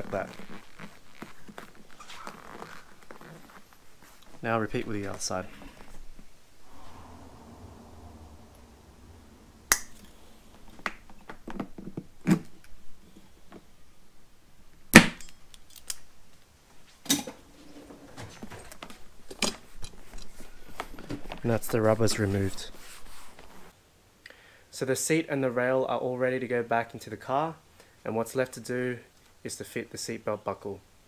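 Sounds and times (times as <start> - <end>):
pliers and metal parts clicking: 15.2 - 16.1.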